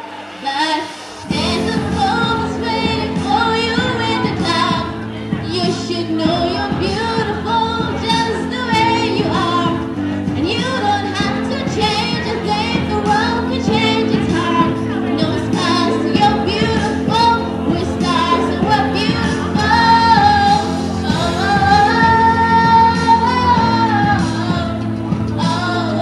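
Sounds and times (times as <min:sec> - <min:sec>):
woman singing with vibrato: 0:00.4 - 0:26.0
instrumental accompaniment chords: 0:01.2 - 0:26.0.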